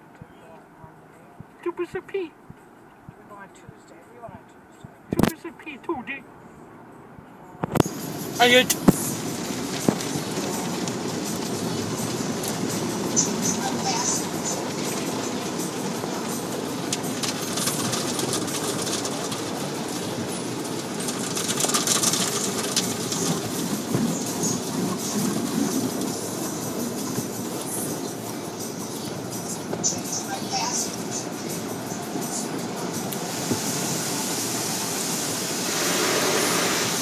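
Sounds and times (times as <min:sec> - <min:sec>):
car wash spray on windshield: 0:07.8 - 0:37.0.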